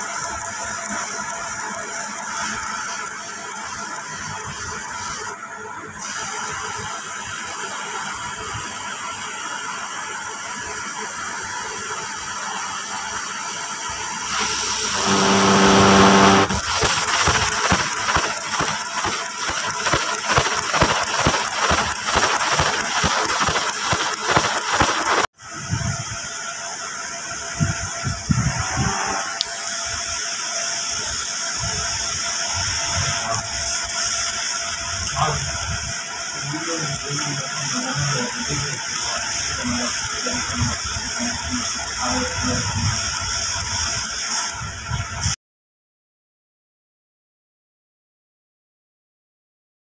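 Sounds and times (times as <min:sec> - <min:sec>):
laser cutting machine hum: 0:11.9 - 0:25.3, 0:28.2 - 0:30.8
buzzing tone: 0:14.3 - 0:25.3, 0:28.2 - 0:29.8
fast even crackling: 0:14.4 - 0:25.3.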